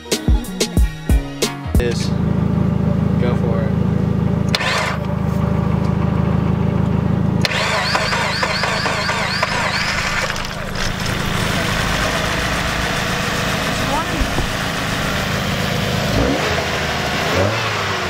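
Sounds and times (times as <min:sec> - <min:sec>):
car engine starting and running: 0:01.8 - 0:18.0.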